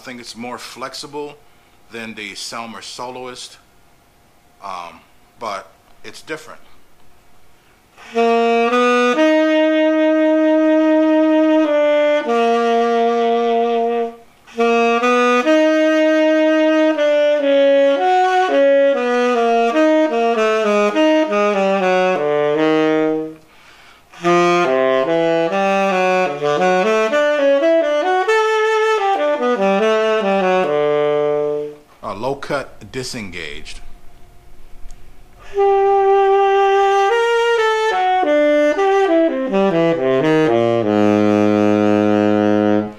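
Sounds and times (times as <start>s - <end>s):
tenor saxophone playing: 7.9s - 32.3s, 34.5s - 42.9s.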